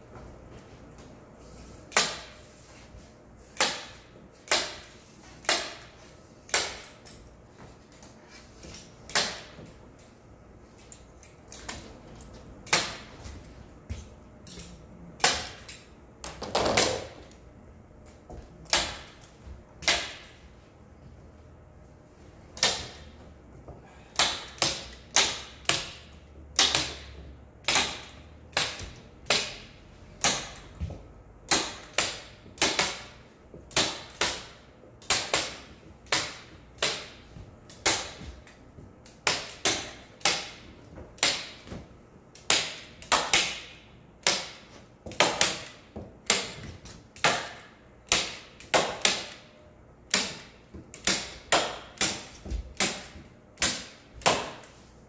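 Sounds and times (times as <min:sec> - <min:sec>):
staple guns snapping into wood: 0:03.6 - 0:05.9, 0:09.1 - 0:09.6, 0:18.6 - 0:20.3, 0:22.6 - 0:23.1, 0:24.2 - 0:30.7.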